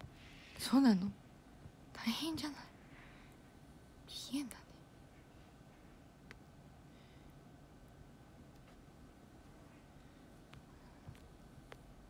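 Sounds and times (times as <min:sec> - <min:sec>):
woman whispering: 0:01.9 - 0:02.8, 0:04.1 - 0:04.9.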